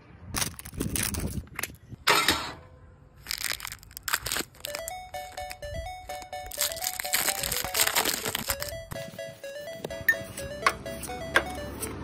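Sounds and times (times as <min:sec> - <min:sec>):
foil wrapper crinkling and tearing: 0:00.4 - 0:01.4, 0:03.2 - 0:04.9, 0:06.4 - 0:08.8
light background music: 0:04.6 - 0:12.0.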